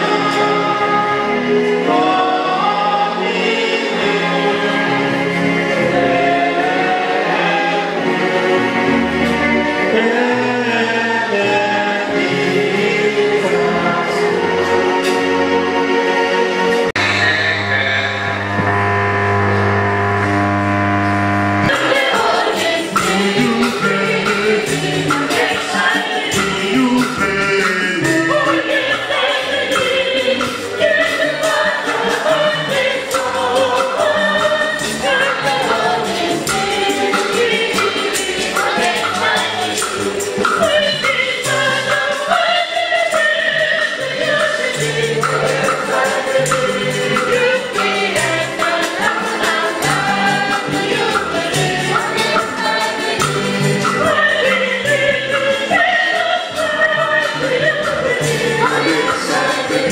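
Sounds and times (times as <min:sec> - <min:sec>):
women's choir singing a hymn: 0:00.0 - 0:16.9, 0:21.7 - 0:27.1, 0:28.1 - 0:59.9
keyboard accompaniment: 0:00.0 - 0:59.9
percussion steady beat: 0:21.6 - 0:59.9.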